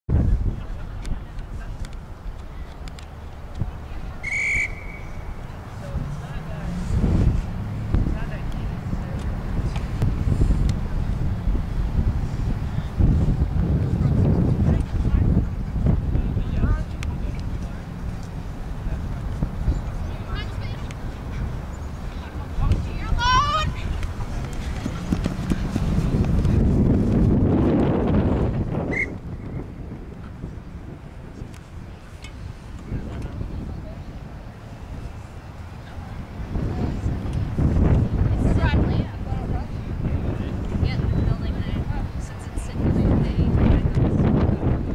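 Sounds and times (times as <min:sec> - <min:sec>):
referee's whistle blast: 0:04.2 - 0:05.2.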